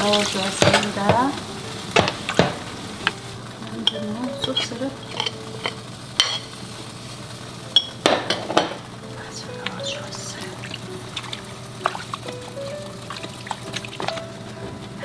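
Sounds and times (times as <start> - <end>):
utensil stirring in steel pot: 0.0 - 7.2, 9.6 - 14.5
soft background music: 0.0 - 15.0.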